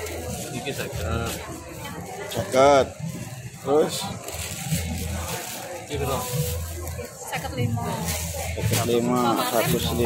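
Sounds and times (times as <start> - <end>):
low background voices: 0.0 - 10.0
plastic bags rustling: 0.0 - 10.0.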